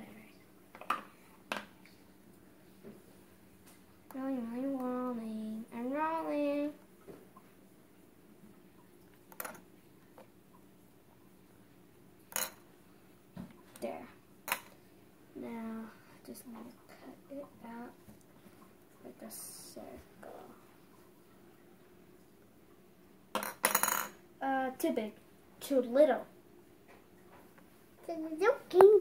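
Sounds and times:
faint steady hum: 0:00.0 - 0:29.0
child's voice: 0:04.1 - 0:06.8, 0:15.4 - 0:18.0, 0:24.4 - 0:26.3, 0:28.0 - 0:29.0
plastic toys clattering on table: 0:09.3 - 0:09.6, 0:23.4 - 0:24.2.

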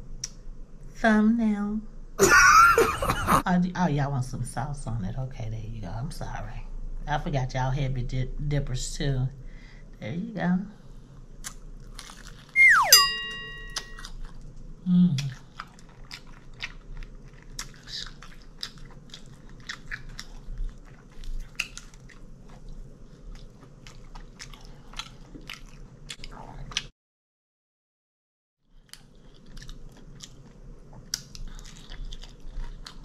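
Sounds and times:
crunchy chewing: 0:11.4 - 0:12.6, 0:13.6 - 0:26.9, 0:28.7 - 0:33.0
loud falling tone: 0:12.6 - 0:13.8.

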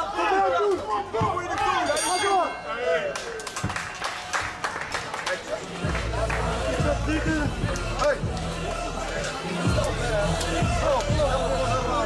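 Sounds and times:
men shouting: 0:00.0 - 0:03.1
crowd noise: 0:00.0 - 0:12.0
sharp claps: 0:03.1 - 0:06.7.

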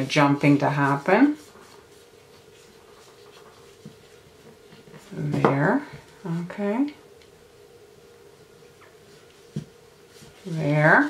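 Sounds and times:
gloved hands rubbing fondant: 0:00.0 - 0:06.9, 0:07.9 - 0:11.0
faint hum: 0:00.0 - 0:11.0.

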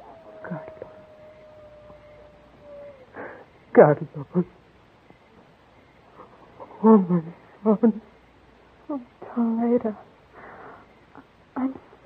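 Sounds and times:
old recording hiss: 0:00.0 - 0:12.0
woman sobbing: 0:02.9 - 0:03.6.

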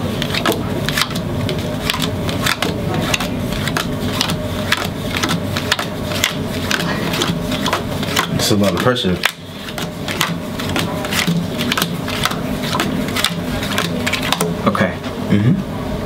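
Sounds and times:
playing cards slapping on wooden table: 0:01.9 - 0:14.6.

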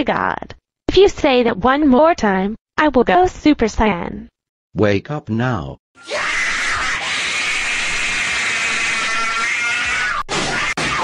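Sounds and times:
strained yell: 0:06.0 - 0:11.0.

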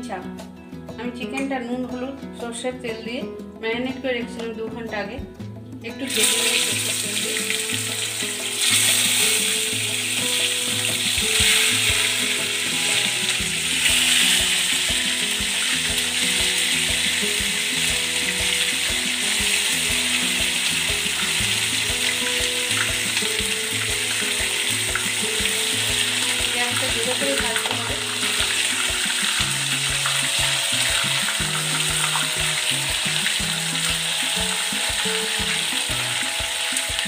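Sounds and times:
chicken sizzling in hot oil: 0:06.0 - 0:37.0.

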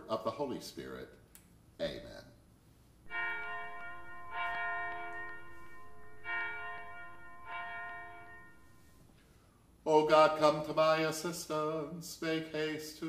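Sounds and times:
bell ringing: 0:03.1 - 0:09.0.

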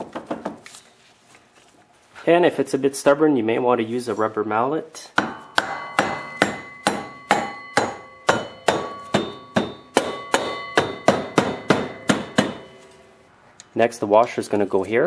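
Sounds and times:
rubber mallet striking metal hub: 0:05.2 - 0:12.8.

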